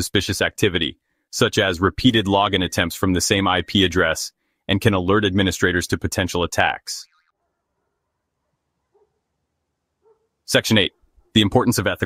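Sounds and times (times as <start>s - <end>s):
narrating voice: 0.0s - 7.1s, 10.5s - 12.0s.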